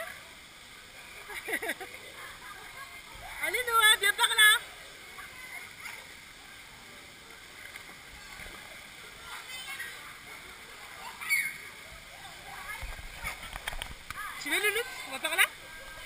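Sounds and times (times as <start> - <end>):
faint voices of swimmers: 0.0 - 16.0
pool water splashing: 0.0 - 16.0.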